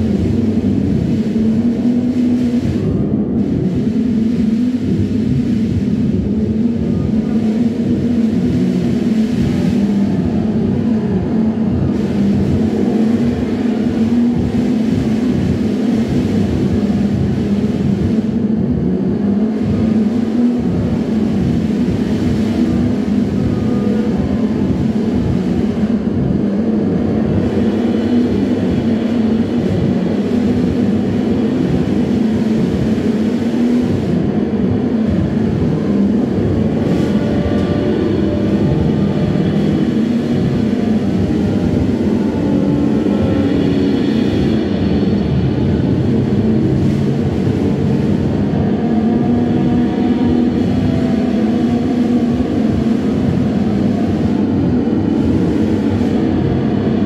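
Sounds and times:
low synthesizer drone: 0.0s - 57.0s.

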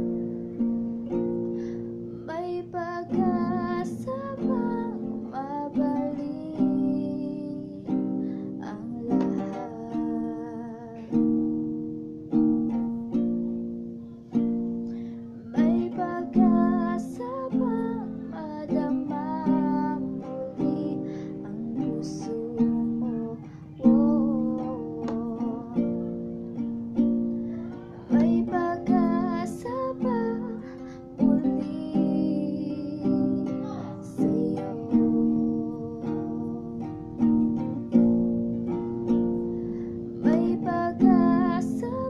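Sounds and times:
woman singing: 2.1s - 11.4s, 15.3s - 26.3s, 27.5s - 38.0s, 40.0s - 42.0s.

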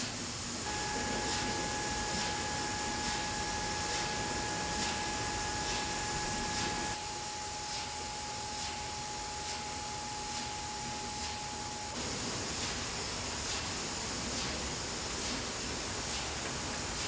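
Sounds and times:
machinery hiss and hum: 0.0s - 17.0s
machinery whine: 0.6s - 12.0s.

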